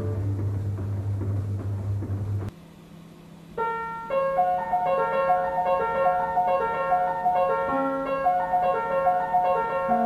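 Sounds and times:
player piano notes: 3.6s - 10.0s.

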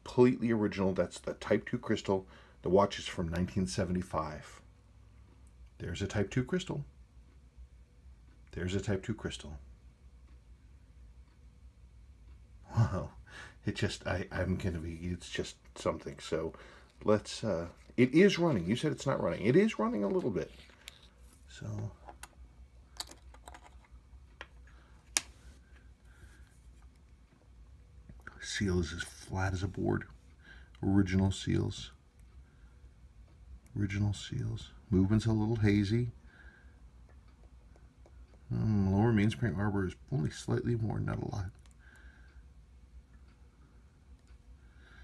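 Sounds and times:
low room hum: 0.0s - 45.0s.

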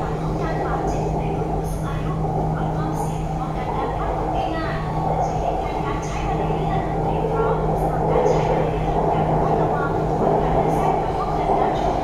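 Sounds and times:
constant low hum: 0.0s - 12.0s
train wheels rumbling on track: 0.0s - 12.0s.

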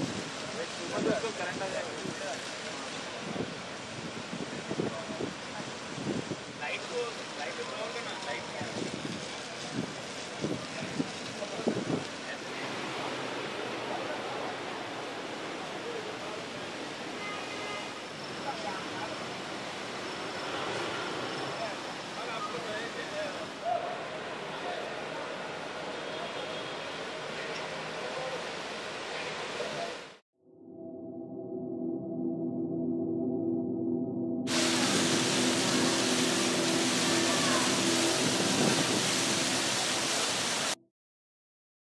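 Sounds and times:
loud static hiss: 0.0s - 30.2s, 34.5s - 40.8s
outdoor background wash: 0.0s - 40.8s
low steady tone: 30.4s - 38.8s.

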